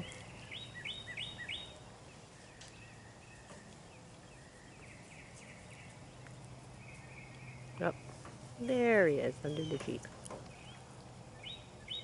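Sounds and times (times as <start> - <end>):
bird chirping: 0.0 - 12.0
steady low hum: 0.0 - 12.0.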